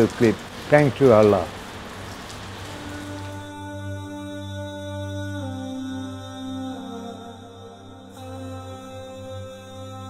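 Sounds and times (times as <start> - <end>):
background hiss: 0.0 - 7.4
ambient drone music: 2.4 - 10.0.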